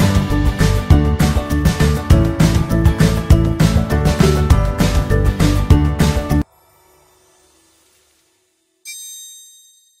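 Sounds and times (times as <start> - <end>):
bright metallic ding: 8.8 - 10.0.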